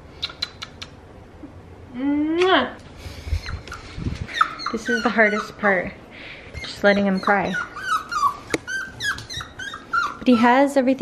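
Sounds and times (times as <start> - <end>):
puppy whining and crying: 3.4 - 5.9, 6.5 - 10.6.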